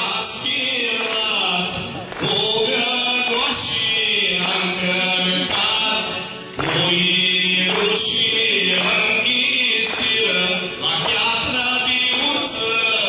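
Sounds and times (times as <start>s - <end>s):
group singing folk song: 0.0s - 13.0s.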